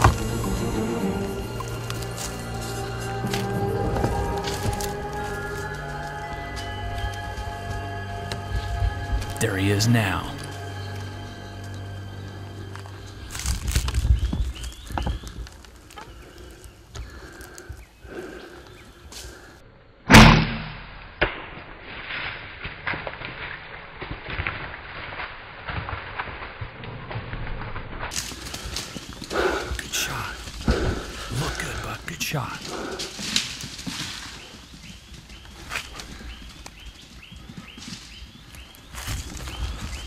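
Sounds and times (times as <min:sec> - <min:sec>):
loud arrow impact thump: 0:20.1 - 0:20.9.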